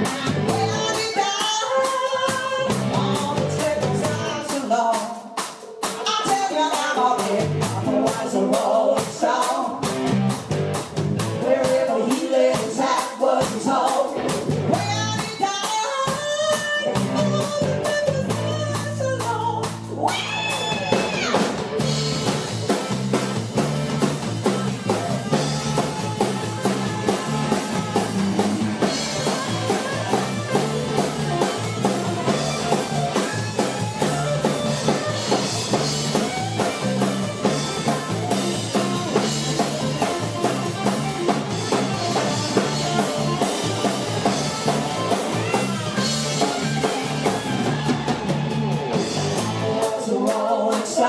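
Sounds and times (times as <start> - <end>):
bass guitar: 0.0 - 4.9, 5.8 - 51.0
drum kit: 0.0 - 51.0
electric guitar: 0.0 - 51.0.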